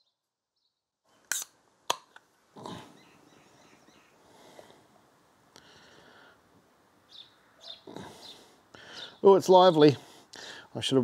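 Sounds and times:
can opening crack and hiss: 1.2 - 2.3.

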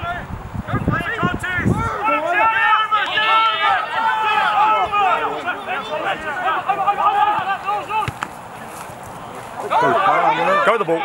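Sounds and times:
players shouting: 0.0 - 11.0.

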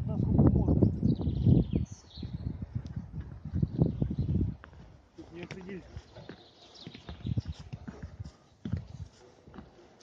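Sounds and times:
footsteps on a roof: 4.3 - 10.0.

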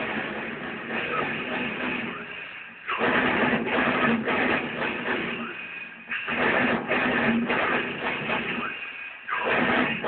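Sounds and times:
distorted electric guitar riff: 0.0 - 10.0.

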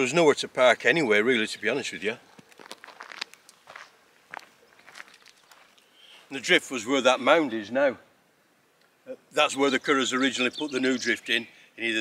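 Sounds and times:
footsteps on gravel: 2.3 - 6.4.

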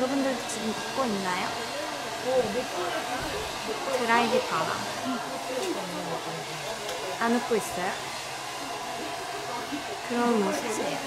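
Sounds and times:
hair dryer running: 0.0 - 11.0.

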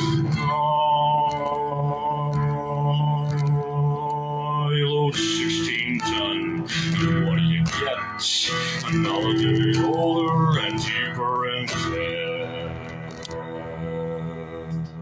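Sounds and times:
strummed acoustic guitar: 0.0 - 14.0
man singing: 0.0 - 15.0.

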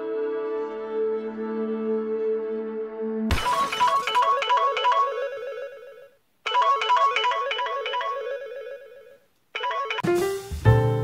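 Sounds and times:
phone alarm ringtone melody: 3.4 - 10.1.

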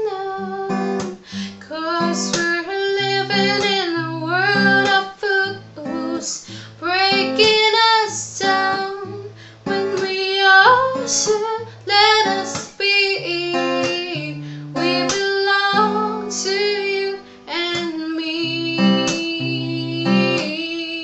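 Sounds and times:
acoustic guitar chords: 0.0 - 21.0
woman singing: 0.0 - 21.0.

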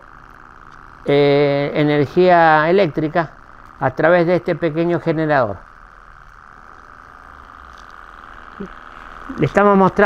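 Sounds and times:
small engine steady hum: 0.0 - 10.0.

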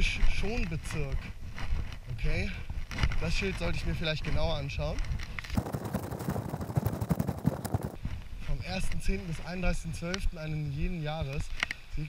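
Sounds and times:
footsteps on sand: 0.0 - 10.3.

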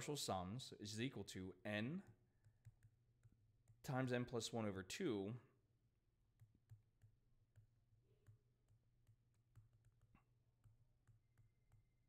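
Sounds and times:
stylus tapping on tablet screen: 1.9 - 4.2, 6.1 - 12.0.

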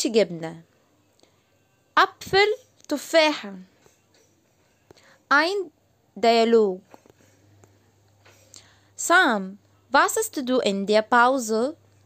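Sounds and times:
soft breath: 4.7 - 5.3, 7.2 - 9.0.

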